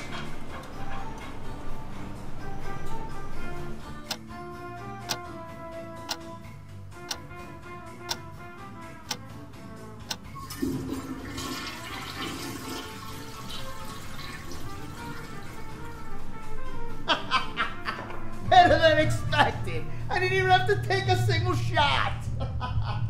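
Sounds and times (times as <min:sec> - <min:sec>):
soft sustained music tones: 0:00.0 - 0:23.0
watch ticking loudly: 0:05.0 - 0:05.4
toilet flushing: 0:10.4 - 0:16.1.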